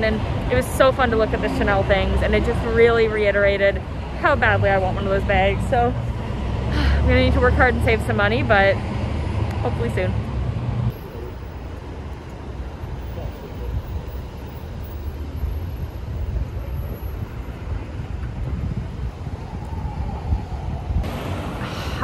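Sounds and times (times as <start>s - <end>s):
traffic rumble: 0.0s - 22.0s
wind buffeting microphone: 12.6s - 22.0s.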